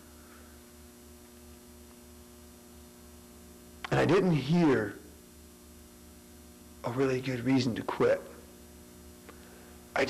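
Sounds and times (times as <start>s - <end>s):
electrical mains hum: 0.0s - 10.0s
man speaking: 3.9s - 5.0s, 6.8s - 8.4s.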